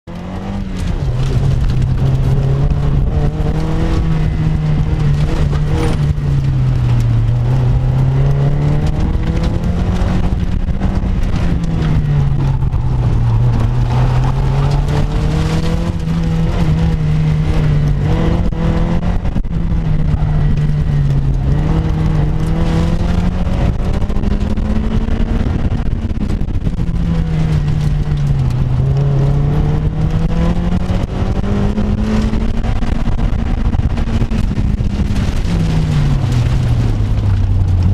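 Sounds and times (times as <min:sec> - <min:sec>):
car engine revving: 0:00.0 - 0:37.9
road rumble: 0:00.0 - 0:37.9
steady wind: 0:00.1 - 0:37.9.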